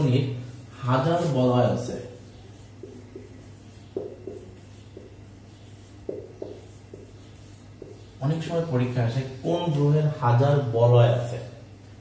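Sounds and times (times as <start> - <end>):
marker strokes on whiteboard: 0.0 - 9.8
steady low hum: 0.0 - 12.0
marker tapping on whiteboard: 2.6 - 8.2.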